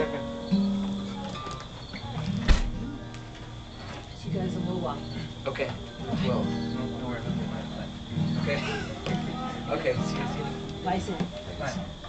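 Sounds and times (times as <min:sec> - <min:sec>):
acoustic guitar notes: 0:00.0 - 0:12.0.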